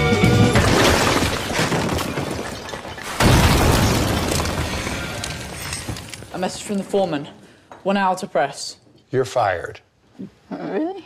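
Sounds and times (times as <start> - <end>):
falling debris: 0.1 - 6.8
wall crashing apart: 0.2 - 6.3.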